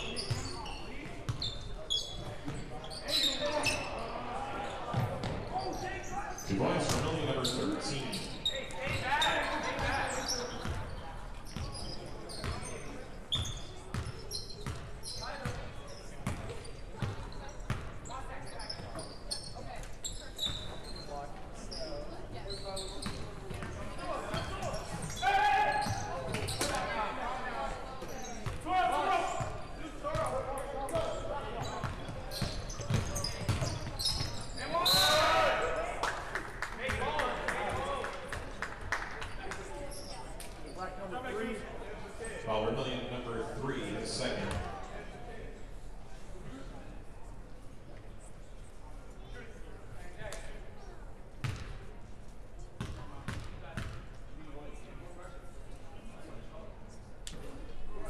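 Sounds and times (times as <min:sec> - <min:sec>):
shoes squeaking: 0:00.0 - 0:17.5, 0:18.4 - 0:26.9, 0:31.6 - 0:35.4.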